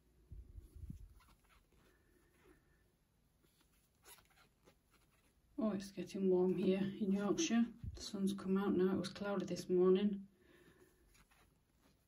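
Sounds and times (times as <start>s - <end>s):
crochet hook rustling yarn: 0.3s - 9.5s, 10.7s - 12.0s.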